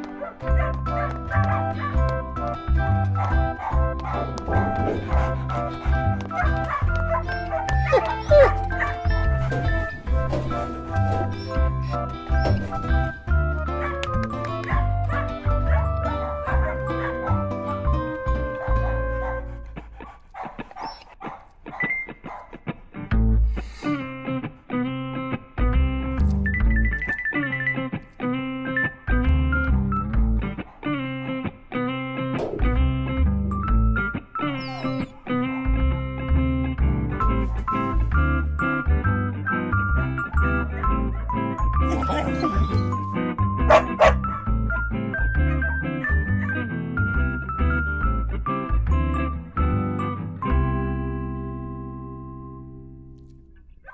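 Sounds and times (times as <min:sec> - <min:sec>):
music with held notes: 0:00.0 - 0:20.2, 0:22.2 - 0:53.6
puppy yipping and barking: 0:03.2 - 0:05.7, 0:06.3 - 0:09.6, 0:11.2 - 0:12.7, 0:20.4 - 0:22.6, 0:34.4 - 0:35.7, 0:40.7 - 0:43.0, 0:43.7 - 0:46.6.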